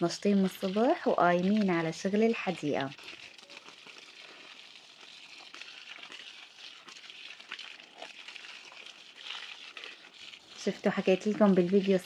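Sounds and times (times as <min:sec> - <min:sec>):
hose water spraying: 0:00.0 - 0:12.0
light water patter: 0:00.0 - 0:12.0.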